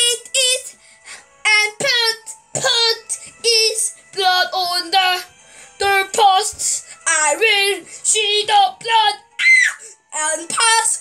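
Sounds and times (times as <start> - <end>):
child singing: 1.4 - 9.2, 10.1 - 11.0.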